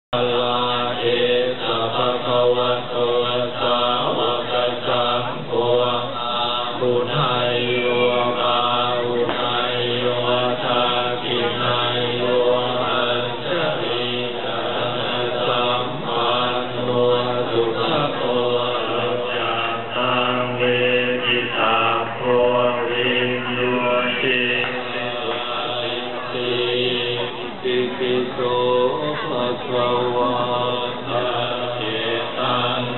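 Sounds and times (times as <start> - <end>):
group chanting in unison: 0.1 - 32.9.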